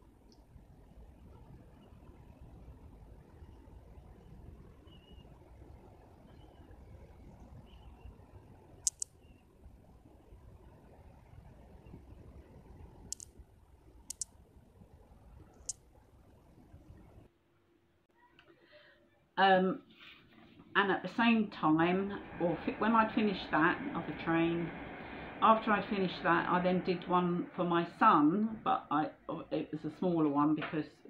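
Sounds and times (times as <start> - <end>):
faint room noise: 0.0 - 31.0
sharp clicks: 8.8 - 9.2, 13.0 - 13.4, 14.0 - 14.4.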